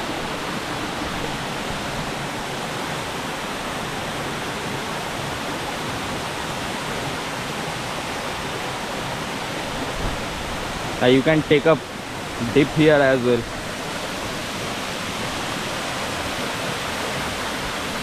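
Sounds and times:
waterfall into rocky pool: 0:00.0 - 0:18.0.

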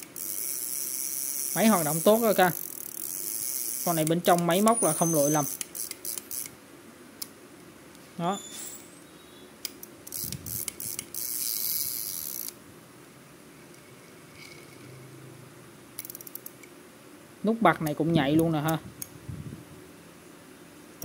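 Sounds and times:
fishing reel rotor whirring: 0:00.0 - 0:06.5, 0:10.1 - 0:12.6
fishing reel clicks: 0:00.0 - 0:06.6, 0:09.6 - 0:12.6, 0:16.0 - 0:16.7.

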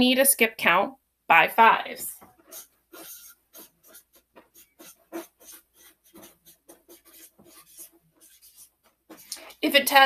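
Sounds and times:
marker writing on whiteboard: 0:02.1 - 0:09.7.

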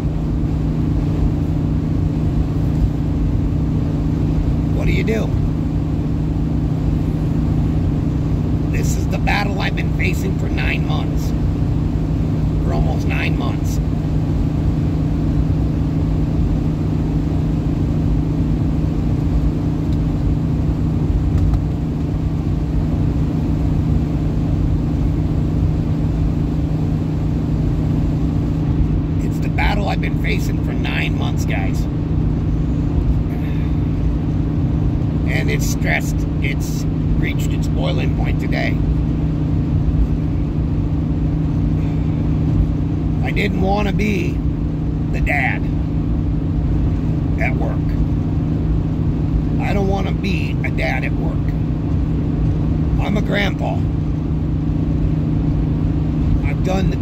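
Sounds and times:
car engine drone and road rumble: 0:00.0 - 0:57.0
constant low hum: 0:00.0 - 0:57.0.

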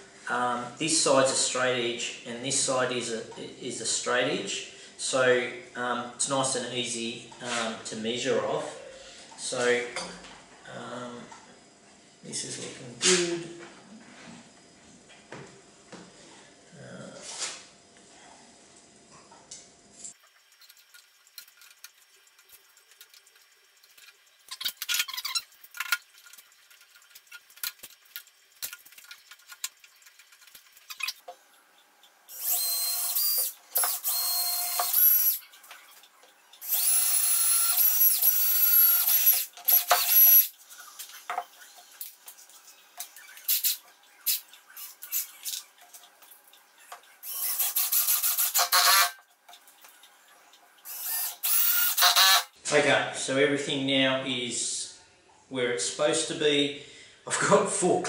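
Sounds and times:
drill driving screws: 0:32.3 - 0:35.4, 0:36.6 - 0:40.5, 0:43.5 - 0:45.4, 0:47.2 - 0:49.2, 0:50.9 - 0:52.5.

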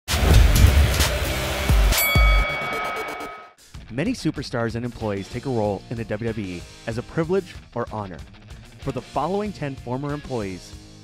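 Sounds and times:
bright metallic ding: 0:01.9 - 0:03.5.

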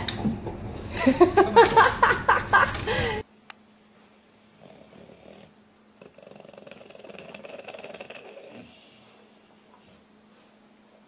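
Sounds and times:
dog snoring: 0:04.5 - 0:09.2.

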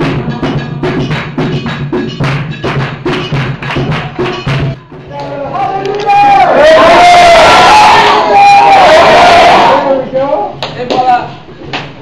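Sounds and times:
sharp drum strokes: 0:00.0 - 0:05.1.

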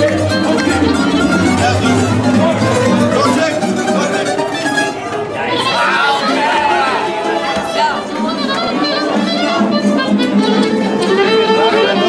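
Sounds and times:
guitars and accordion playing: 0:00.0 - 0:12.0
people talking: 0:00.0 - 0:12.0.

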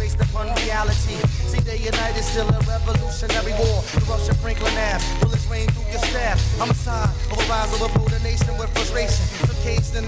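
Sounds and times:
deep bass line: 0:00.0 - 0:10.0
person rapping: 0:00.0 - 0:10.0
steady drum beat: 0:00.0 - 0:10.0.

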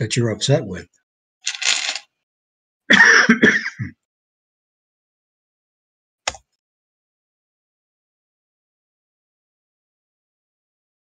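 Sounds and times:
man coughing: 0:02.9 - 0:04.0.

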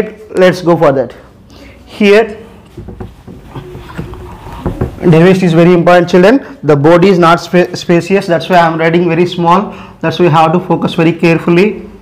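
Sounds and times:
soft knocks: 0:02.7 - 0:05.2
cloth scrubbing a whiteboard: 0:02.8 - 0:05.2.

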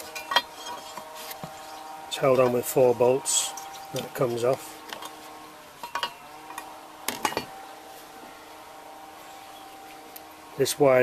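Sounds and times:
faint metallic ring: 0:00.0 - 0:01.7, 0:05.8 - 0:07.6.

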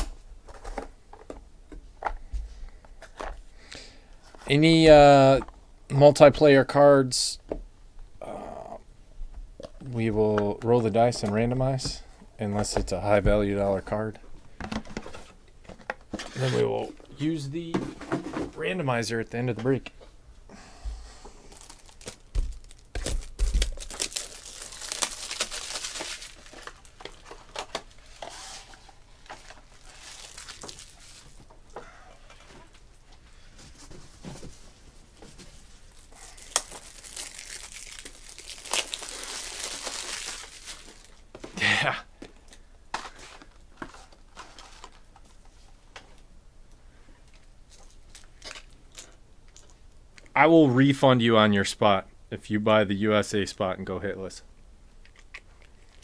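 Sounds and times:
plastic wrapping crinkling: 0:21.4 - 0:31.5, 0:35.6 - 0:41.2, 0:55.1 - 0:56.0.

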